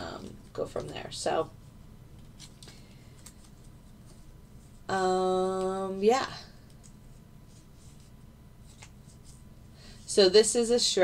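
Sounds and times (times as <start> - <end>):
soft rustles: 6.8 - 10.2.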